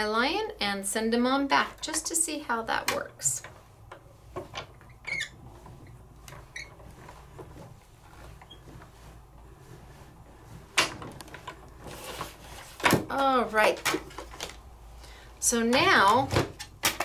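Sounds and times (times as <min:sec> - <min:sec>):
light clicks and squeaks: 0:01.7 - 0:09.0.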